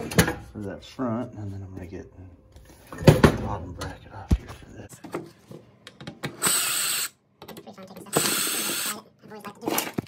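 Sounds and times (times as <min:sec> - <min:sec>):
cordless drill running: 0:06.4 - 0:07.2, 0:08.1 - 0:08.9.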